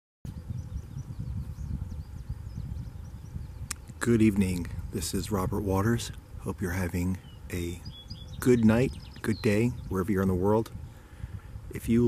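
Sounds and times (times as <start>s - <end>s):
faint high bird chirps: 0.3s - 4.0s, 7.0s - 10.2s
low uneven rumble: 0.3s - 12.0s.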